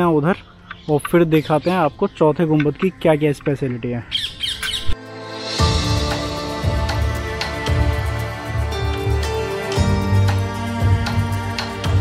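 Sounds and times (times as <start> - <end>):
background music: 0.0 - 12.0
harsh bird squawks: 4.0 - 5.0.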